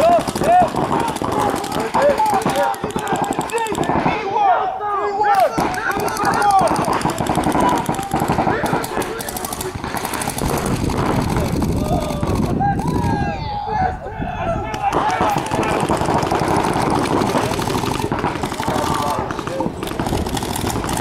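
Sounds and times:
paintball markers firing: 0:00.0 - 0:04.2, 0:05.4 - 0:13.2, 0:14.7 - 0:21.0
voices shouting: 0:00.0 - 0:21.0.

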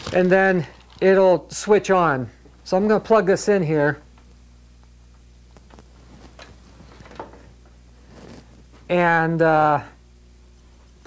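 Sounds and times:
steady low hum: 0:00.0 - 0:11.0
electrical cord rustling: 0:05.4 - 0:08.9.

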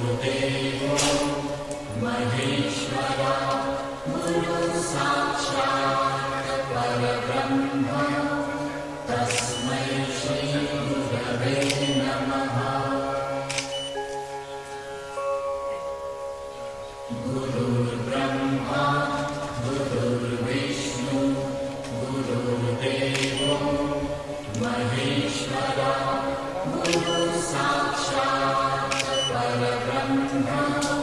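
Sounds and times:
devotional mantra chanting: 0:00.0 - 0:13.5, 0:16.9 - 0:31.0
sharp clicks: 0:26.8 - 0:27.3.

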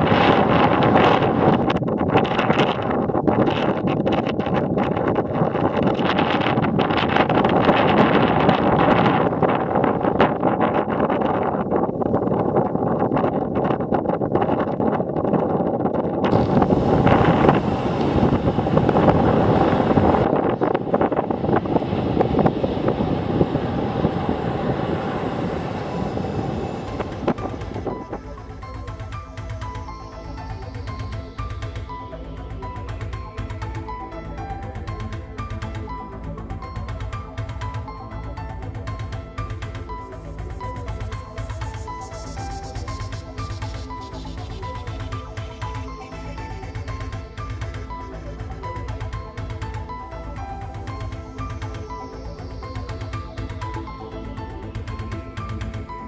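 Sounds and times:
wind on microphone: 0:00.0 - 0:56.0
surf washing over rocks: 0:16.3 - 0:28.2.

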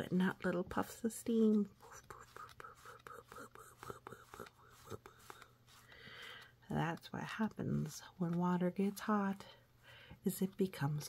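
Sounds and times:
cardboard spin wheel turning: 0:00.0 - 0:09.4
faint whispering: 0:01.8 - 0:05.4.

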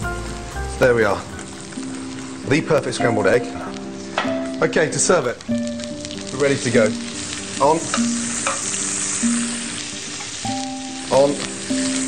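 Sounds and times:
vegetables sizzling in frying pan: 0:00.0 - 0:12.0.

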